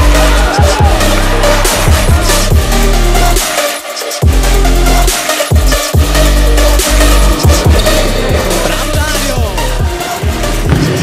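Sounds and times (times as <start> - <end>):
electronic music with heavy bass: 0.0 - 11.0.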